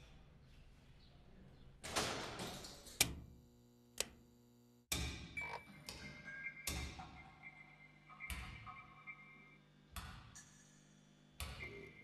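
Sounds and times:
steady hum: 0:03.0 - 0:12.0.

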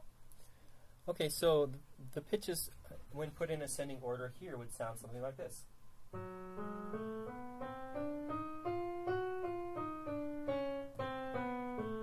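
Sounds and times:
piano playing a scale: 0:06.1 - 0:12.0.

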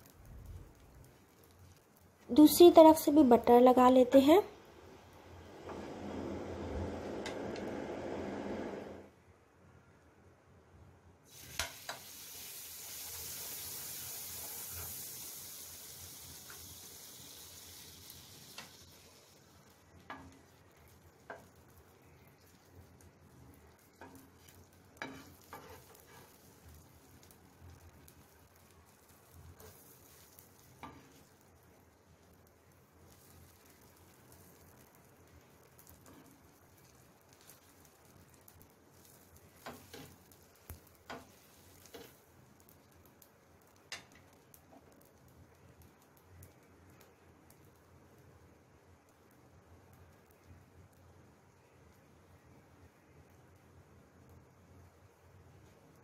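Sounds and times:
butter sizzling in a pan: 0:00.0 - 0:09.0, 0:11.3 - 0:56.0.

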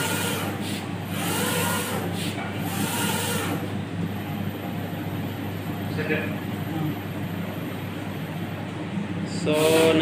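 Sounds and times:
steady motor hum: 0:00.0 - 0:10.0.

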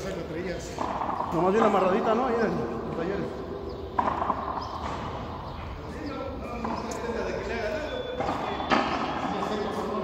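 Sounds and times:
background voices talking: 0:00.0 - 0:10.0.

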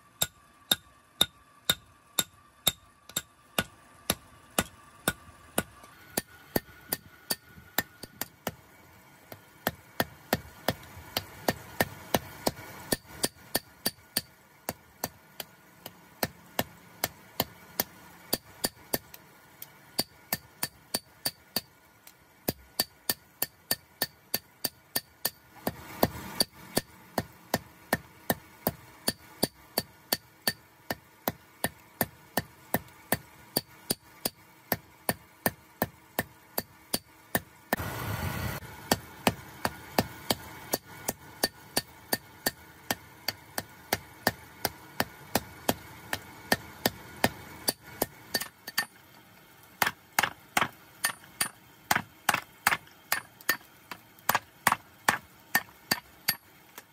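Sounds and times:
hammer striking metal on anvil: 0:00.2 - 0:08.6, 0:09.6 - 0:14.4, 0:20.0 - 0:21.7, 0:22.5 - 0:25.8, 0:29.0 - 0:30.6, 0:45.3 - 0:49.0, 0:49.8 - 0:53.7, 0:54.3 - 0:56.5
rushing noise bursts: 0:37.8 - 0:38.7.

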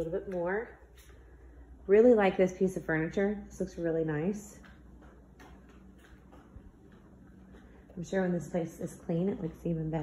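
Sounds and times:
footsteps on tile floor: 0:00.0 - 0:10.0
low room hum: 0:00.0 - 0:10.0.

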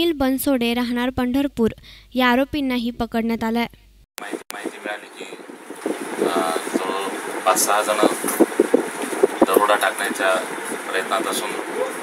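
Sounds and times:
man speaking: 0:04.2 - 0:05.4, 0:06.2 - 0:08.3, 0:09.4 - 0:12.0.

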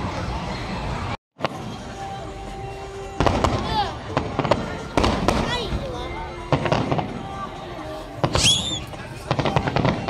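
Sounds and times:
fireworks bangs: 0:03.2 - 0:07.3, 0:08.2 - 0:10.0.

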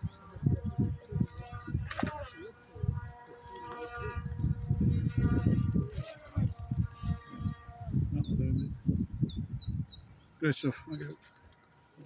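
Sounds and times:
songbird chirping: 0:00.0 - 0:05.4, 0:06.8 - 0:11.7.

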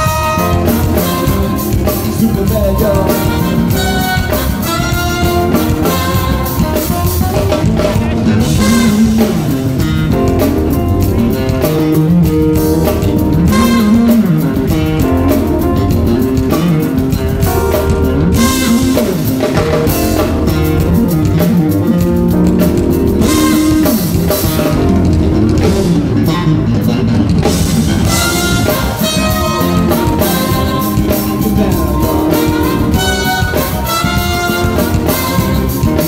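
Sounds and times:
electric bass line: 0:00.0 - 0:36.0
jazz-funk band playing: 0:00.0 - 0:36.0.

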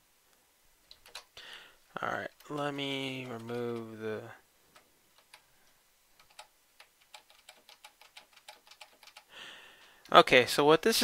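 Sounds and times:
faint keyboard keystrokes: 0:00.9 - 0:01.4, 0:04.7 - 0:10.2.

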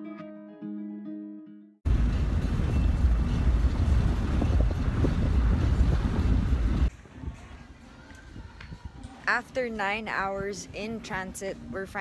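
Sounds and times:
wind rushing through car window: 0:01.9 - 0:06.9.

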